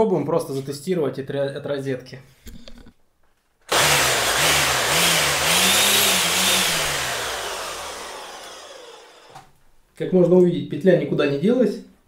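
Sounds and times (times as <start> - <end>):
electric string trimmer running: 3.7 - 9.5.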